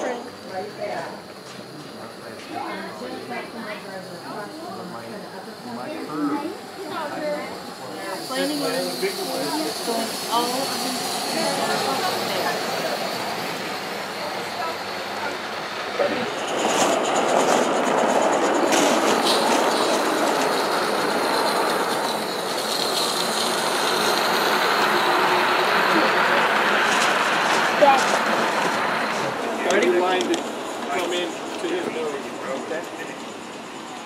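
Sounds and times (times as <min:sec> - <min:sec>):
model train rolling on track: 0:00.0 - 0:34.0
high wheel squeal: 0:07.0 - 0:15.3, 0:16.0 - 0:29.4.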